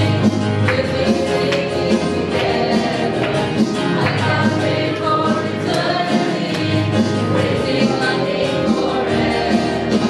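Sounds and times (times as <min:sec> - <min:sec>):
youth choir singing: 0:00.0 - 0:10.0.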